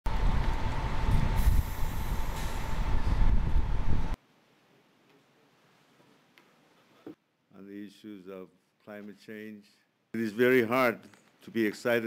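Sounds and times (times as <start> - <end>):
steady high whine: 0.1 - 4.2.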